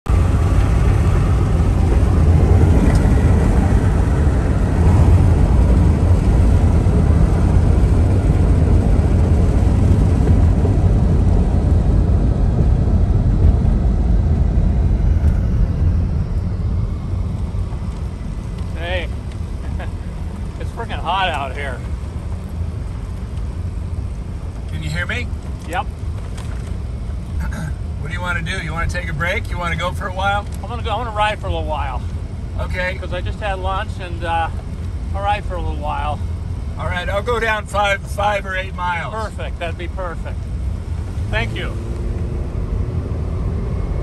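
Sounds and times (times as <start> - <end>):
car road and engine rumble: 0.0 - 44.0.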